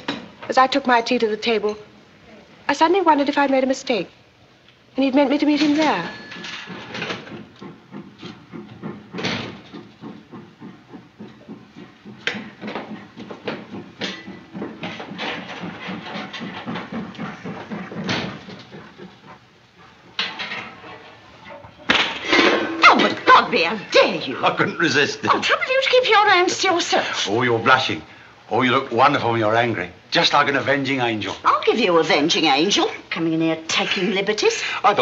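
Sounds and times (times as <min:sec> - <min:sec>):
footsteps in heels: 0:06.0 - 0:19.4
loud knock: 0:06.3 - 0:18.8.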